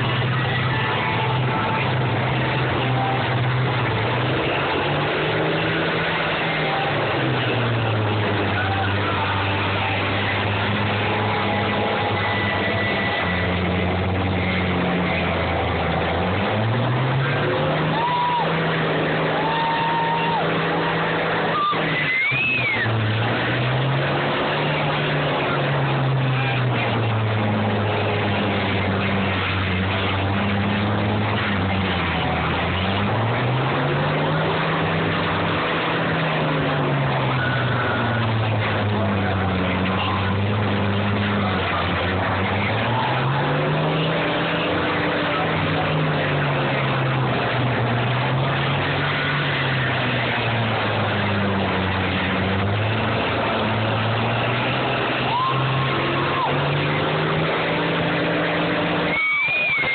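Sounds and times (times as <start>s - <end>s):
dense rough noise: 0.0s - 59.9s
diesel engines revving under load: 0.0s - 59.9s.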